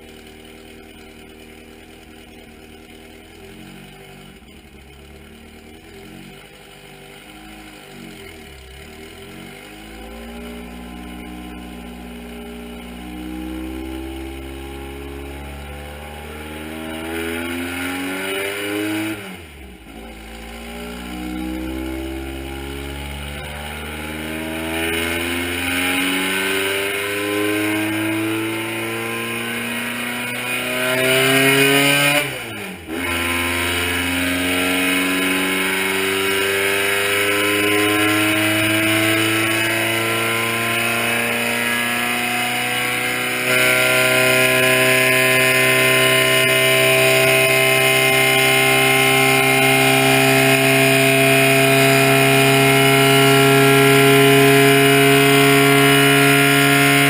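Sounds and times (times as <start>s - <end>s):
engine revving: 0.0s - 57.0s.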